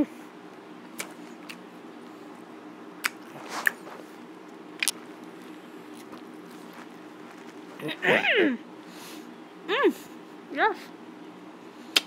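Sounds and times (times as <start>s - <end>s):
steady low hum: 0.0s - 12.0s
wet mouth smacks: 1.0s - 1.6s, 3.0s - 3.8s, 4.8s - 5.0s
person chewing: 3.0s - 7.9s.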